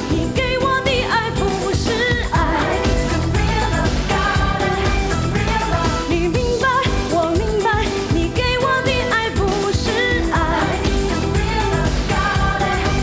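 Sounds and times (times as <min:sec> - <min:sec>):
dance-pop backing music: 0:00.0 - 0:13.0
woman singing: 0:00.0 - 0:13.0.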